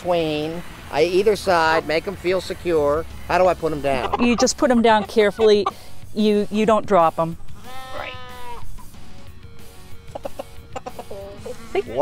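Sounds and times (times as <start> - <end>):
background music: 0.0 - 12.0
rooster clucking: 3.5 - 6.0, 10.0 - 12.0.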